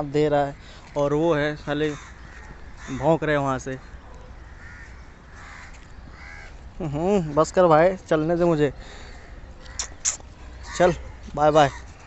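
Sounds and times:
faint outdoor background noise: 0.0s - 12.0s
distant animal calls: 1.7s - 7.0s, 8.8s - 12.0s.

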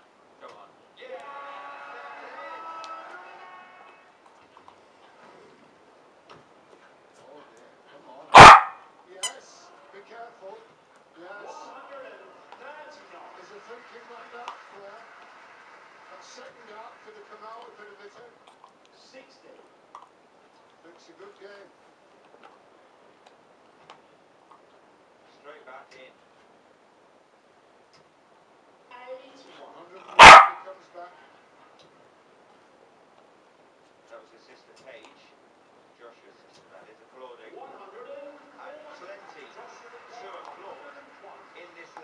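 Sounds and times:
dog barking: 8.3s - 8.8s, 30.1s - 30.7s.

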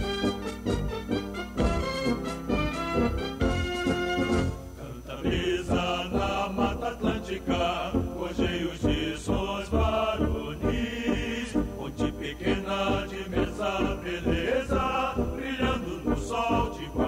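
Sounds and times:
orchestra and brass accompaniment: 0.0s - 4.6s
choir singing an anthem: 4.2s - 17.0s.

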